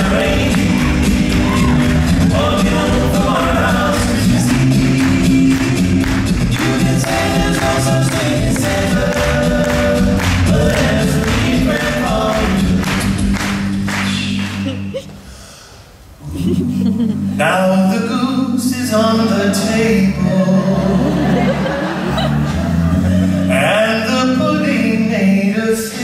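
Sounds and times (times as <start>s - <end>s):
a cappella group singing: 0.0s - 13.2s, 16.4s - 26.0s
beatboxed percussion: 0.0s - 15.4s.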